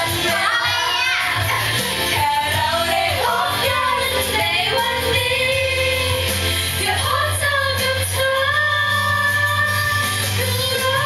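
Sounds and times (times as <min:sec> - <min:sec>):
karaoke backing track: 0:00.0 - 0:11.0
women singing karaoke: 0:00.0 - 0:11.0.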